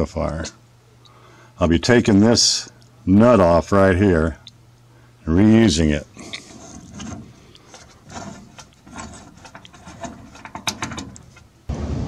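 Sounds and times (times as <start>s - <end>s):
wrench clicking and scraping: 6.2s - 11.5s.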